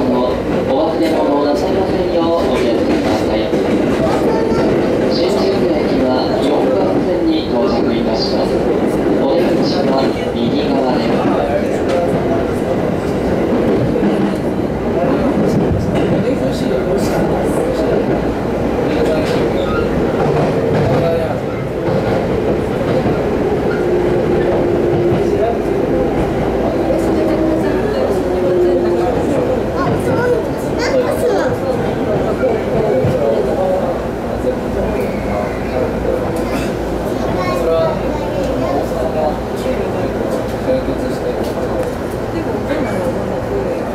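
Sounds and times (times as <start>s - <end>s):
train wheels rolling on rails: 0.0s - 43.9s.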